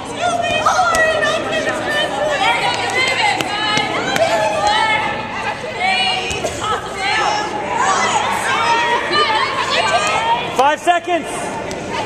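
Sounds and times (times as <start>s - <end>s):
young women shouting and chattering: 0.0s - 10.6s.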